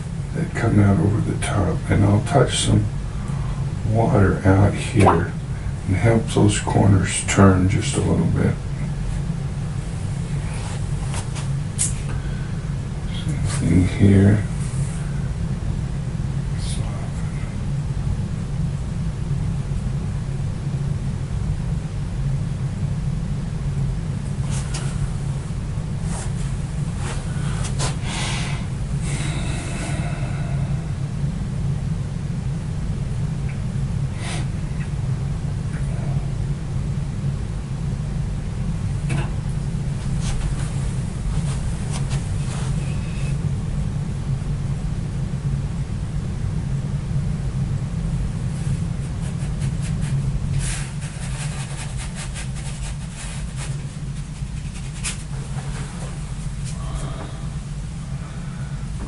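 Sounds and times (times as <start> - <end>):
steady low hum: 0.0 - 59.0
brush strokes on paper: 26.0 - 28.3, 40.2 - 43.3, 48.6 - 56.8
paintbrush tapping and scraping: 48.6 - 56.0.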